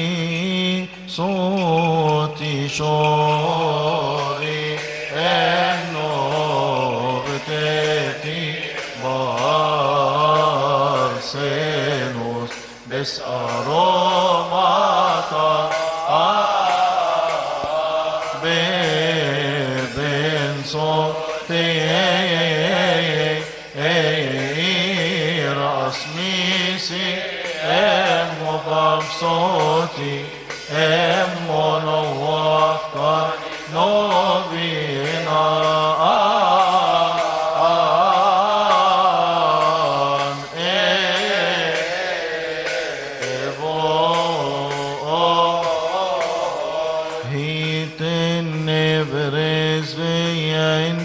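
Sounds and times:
male choir chanting a hymn: 0.0s - 51.0s.

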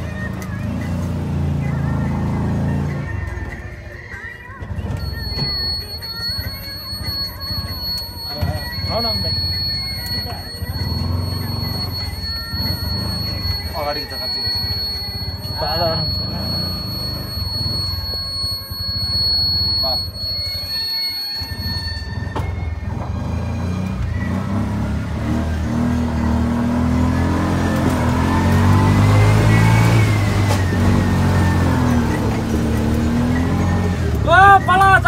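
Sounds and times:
music playing: 0.0s - 35.0s
road noise: 0.0s - 35.0s
vehicle engine rumble: 0.0s - 35.0s.

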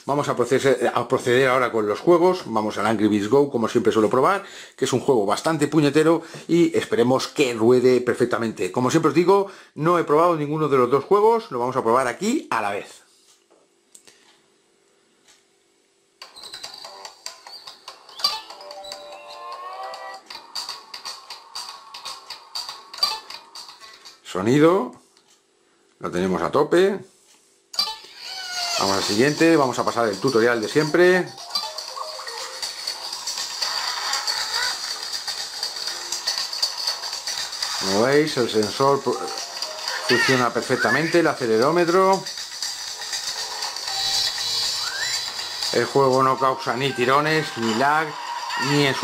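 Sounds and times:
video game music from phone speaker: 16.4s - 24.2s, 29.0s - 36.4s, 37.2s - 49.0s
racing game music: 16.6s - 24.2s, 29.2s - 34.9s
kart sound effects: 28.8s - 49.0s.

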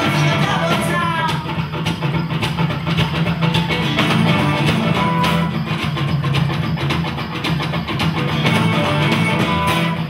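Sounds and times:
person singing: 0.0s - 1.5s
acoustic guitars strumming: 0.0s - 10.0s.

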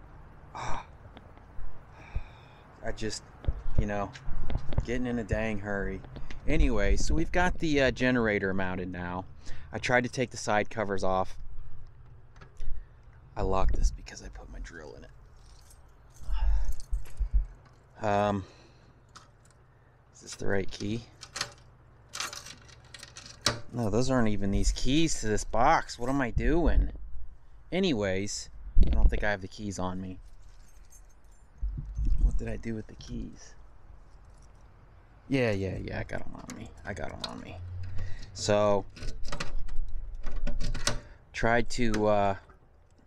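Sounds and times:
keys jingling and clicking in a lock: 15.4s - 18.0s, 20.2s - 23.7s, 30.2s - 32.2s, 34.0s - 34.7s, 37.9s - 41.1s.

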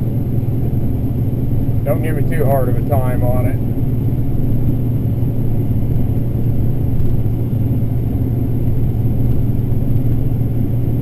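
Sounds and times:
combine harvester drone: 0.0s - 11.0s.

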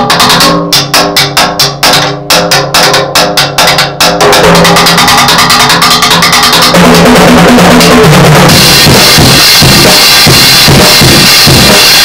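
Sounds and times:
drum kit played fast: 0.0s - 12.0s.

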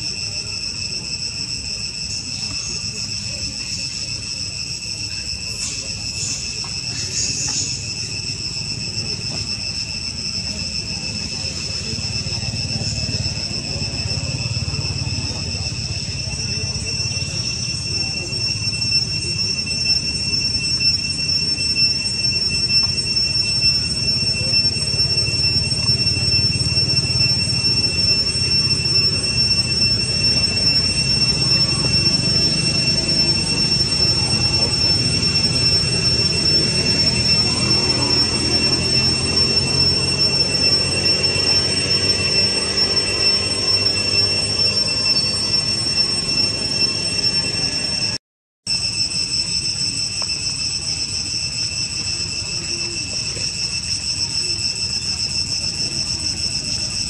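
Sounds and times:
high-pitched insect drone: 0.0s - 57.0s.

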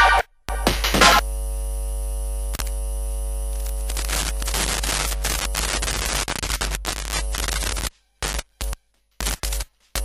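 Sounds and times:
chopped glitch bursts: 0.0s - 1.9s, 3.8s - 10.0s
buzzy electrical hum: 0.5s - 10.0s.

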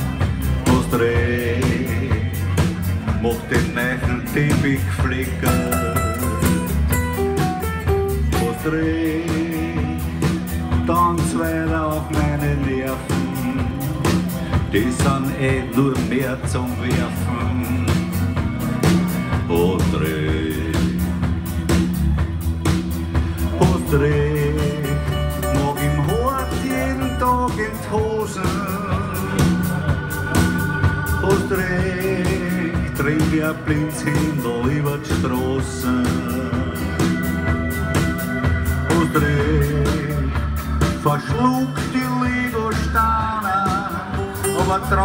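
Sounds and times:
acoustic guitars strumming: 0.0s - 45.0s
steady drum beat: 0.0s - 45.0s
upright bass: 0.0s - 45.0s
lead guitar bending sliding notes: 4.2s - 10.2s.

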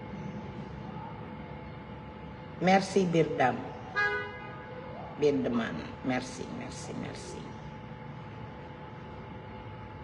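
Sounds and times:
woman speaking: 2.6s - 4.0s, 5.1s - 7.6s.

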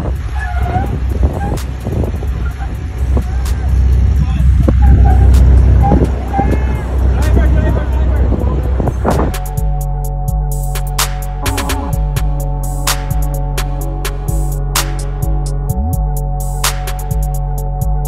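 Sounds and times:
truck engine rumbling: 0.0s - 18.0s
people calling out: 5.8s - 7.6s.

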